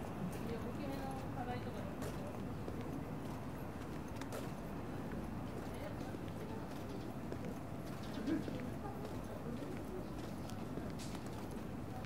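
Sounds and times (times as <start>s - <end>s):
indistinct chatter: 0.0s - 12.0s
shoes clicking on pavement: 0.3s - 12.0s.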